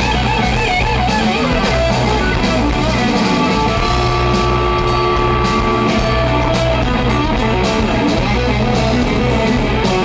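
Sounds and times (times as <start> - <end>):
drums: 0.0 - 10.0
electric guitar: 0.0 - 10.0.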